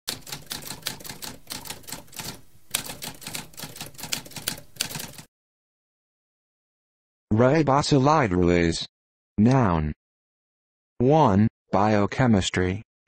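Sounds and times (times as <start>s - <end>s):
typewriter keys clacking: 0.1s - 5.3s.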